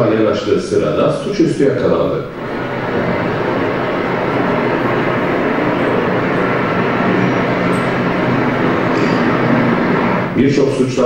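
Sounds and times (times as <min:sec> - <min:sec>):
loud rumbling over loudspeakers: 0:00.0 - 0:11.0.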